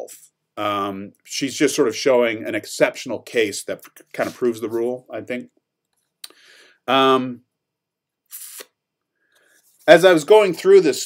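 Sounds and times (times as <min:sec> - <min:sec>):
man speaking: 0:00.0 - 0:05.6, 0:06.9 - 0:07.5, 0:09.8 - 0:11.0.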